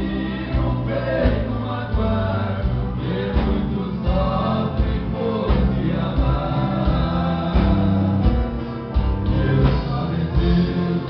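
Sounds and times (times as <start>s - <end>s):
acoustic guitars strummed: 0.0s - 11.0s
men singing together: 0.0s - 11.0s
steady low beat: 0.0s - 11.0s.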